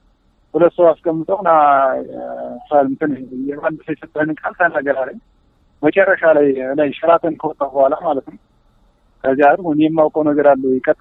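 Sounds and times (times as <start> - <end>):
person narrating: 0.6 - 5.2.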